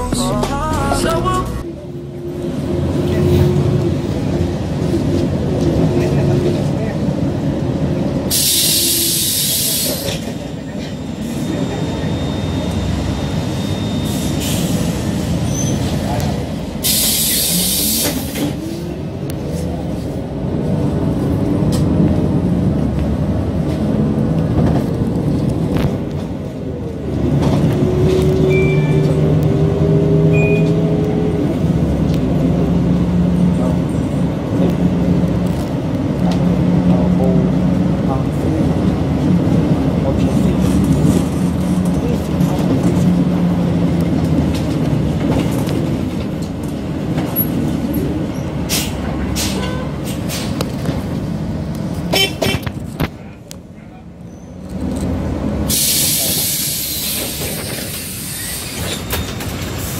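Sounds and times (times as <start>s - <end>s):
bus engine and road noise: 0.0s - 59.9s.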